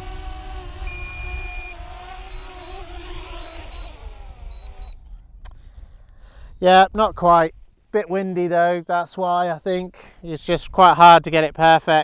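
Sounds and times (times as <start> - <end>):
drone propellers buzzing: 0.0 - 5.1
wind rumbling on microphone: 0.0 - 7.8
short electronic beeps: 0.9 - 5.0.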